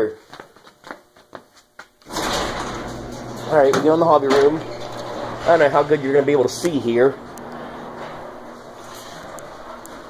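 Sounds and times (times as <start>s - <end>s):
footsteps on concrete floor: 0.0s - 2.1s.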